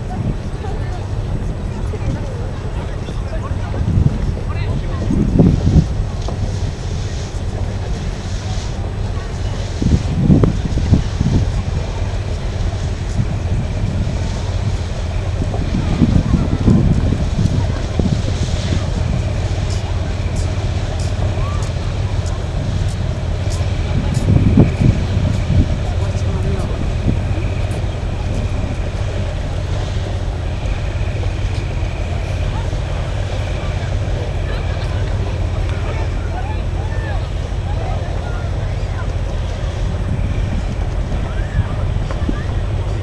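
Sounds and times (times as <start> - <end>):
faint voices of people: 0.0 - 43.0
steady low rumble: 0.0 - 43.0.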